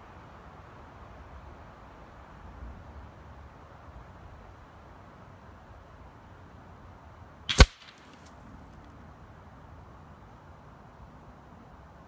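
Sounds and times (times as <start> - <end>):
air rifle shot: 7.5 - 8.2
air rifle click: 7.5 - 8.3.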